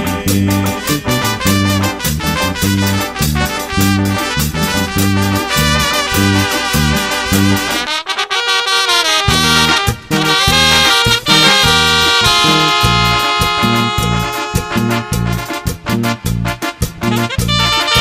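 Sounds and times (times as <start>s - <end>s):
electric bass line: 0.0s - 7.9s, 9.3s - 18.0s
latin dance band with horns: 0.0s - 18.0s.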